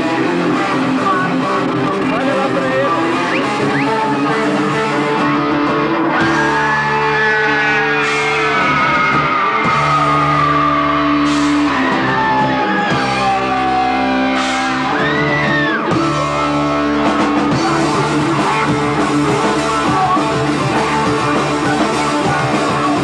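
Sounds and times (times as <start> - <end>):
bass: 0.0 - 23.0
drum kit: 0.0 - 23.0
electric guitars holding chords: 0.0 - 23.0
heavy metal band playing live: 0.0 - 23.0
lead guitar line sliding in pitch: 0.0 - 23.0.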